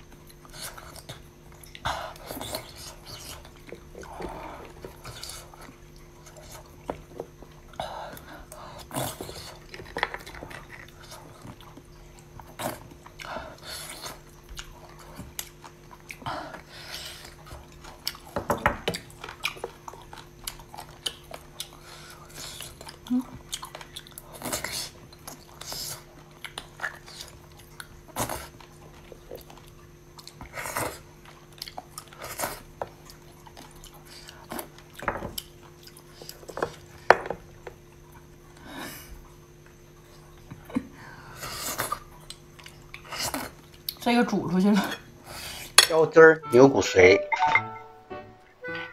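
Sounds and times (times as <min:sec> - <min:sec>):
faint steady hum: 0:00.0 - 0:48.9
chewing mouth sounds: 0:08.8 - 0:36.9.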